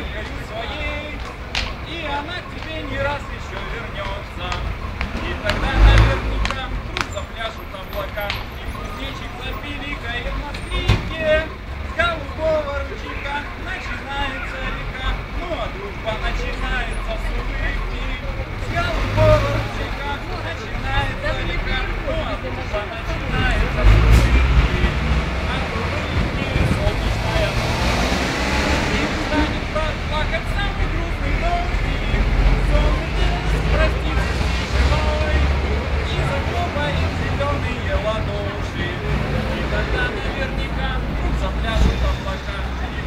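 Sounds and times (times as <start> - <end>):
people's voices: 0.0 - 43.0
street traffic rumble: 0.0 - 43.0.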